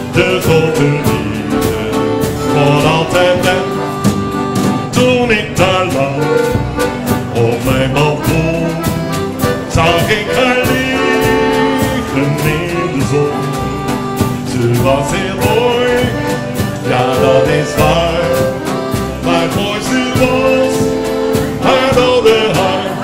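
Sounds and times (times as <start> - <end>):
man singing into a microphone: 0.0 - 4.0, 4.8 - 23.0
accordion: 0.0 - 23.0
acoustic guitar: 0.0 - 23.0
percussion beat: 0.0 - 23.0.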